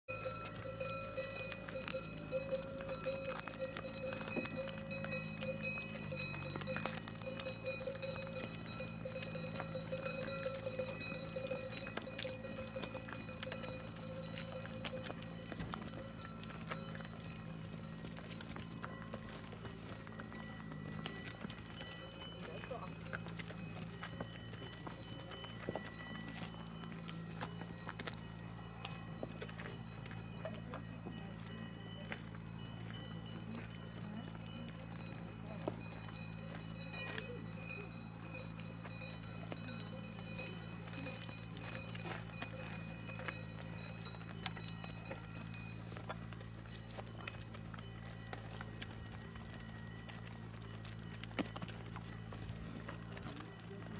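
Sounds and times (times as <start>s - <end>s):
cow hooves clopping on asphalt: 0.1s - 53.9s.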